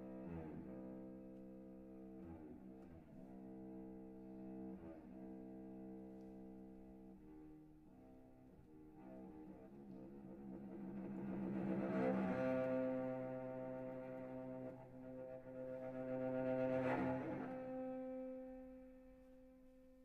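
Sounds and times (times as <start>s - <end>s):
cello sustained bowed notes: 0.0s - 20.0s.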